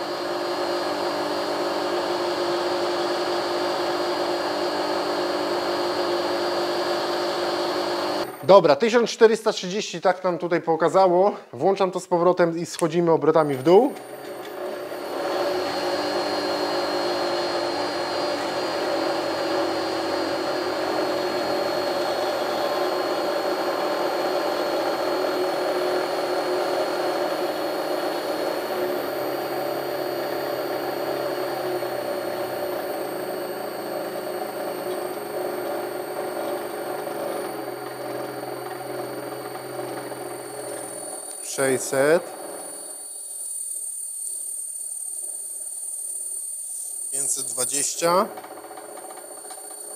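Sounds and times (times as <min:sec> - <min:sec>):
drill motor whirring: 0:00.0 - 0:08.6, 0:13.5 - 0:49.9.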